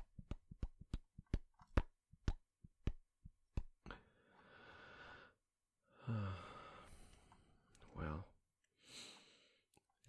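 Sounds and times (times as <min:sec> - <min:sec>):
voiced breath: 0:03.8 - 0:07.7, 0:08.8 - 0:09.7
man sighing: 0:05.9 - 0:07.1.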